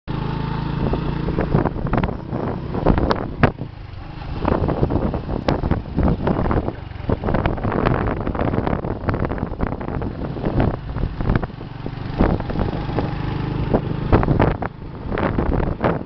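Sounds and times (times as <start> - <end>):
motorcycle engine: 0.1 - 16.0
wind on microphone: 0.4 - 16.0.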